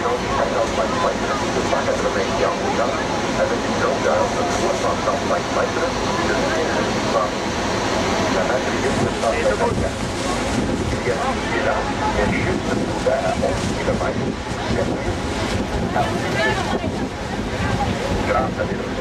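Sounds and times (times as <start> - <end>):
faint voices: 0.0 - 19.0
waterfall rushing: 0.0 - 19.0
wind buffeting microphone: 0.0 - 19.0.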